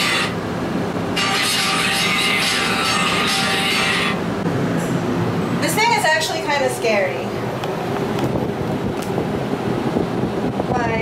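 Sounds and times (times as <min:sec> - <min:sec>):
wind buffeting microphone: 0:07.2 - 0:11.0.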